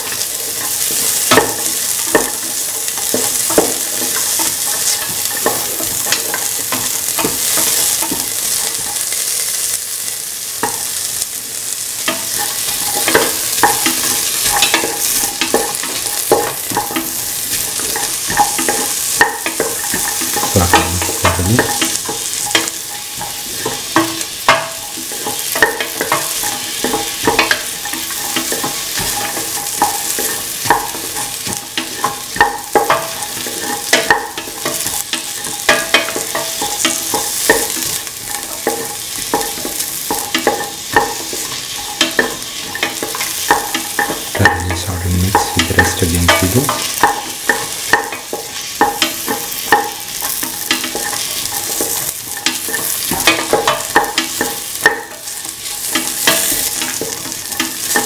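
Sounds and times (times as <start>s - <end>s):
vegetables sizzling in oil: 0.0s - 58.0s
metal spoon scraping a pan: 12.0s - 44.5s, 46.7s - 58.0s.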